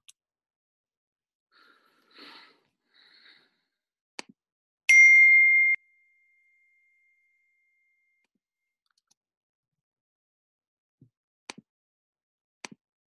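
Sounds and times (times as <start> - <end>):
electronic ding: 4.9 - 7.3.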